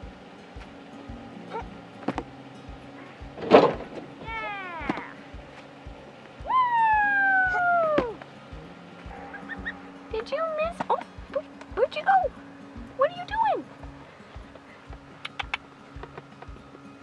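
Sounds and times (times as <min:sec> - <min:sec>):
background music with steady beat: 0:00.0 - 0:17.0
hay bale thudding on ground: 0:03.3 - 0:04.1
long high cry: 0:04.2 - 0:05.3, 0:06.4 - 0:08.2.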